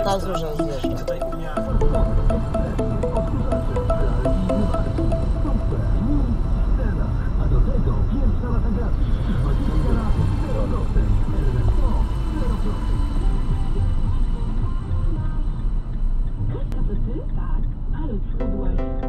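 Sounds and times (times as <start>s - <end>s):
music: 0.0s - 6.6s, 12.5s - 16.7s, 18.4s - 19.0s
indistinct talking: 0.0s - 19.0s
car road and engine rumble: 5.2s - 18.8s.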